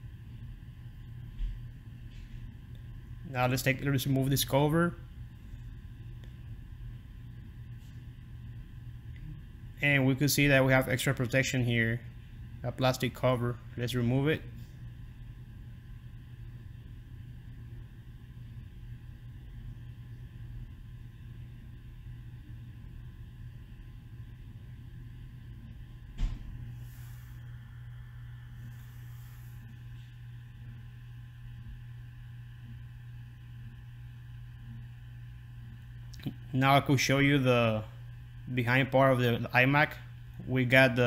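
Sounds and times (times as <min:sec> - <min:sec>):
low hum: 0:00.0 - 0:41.0.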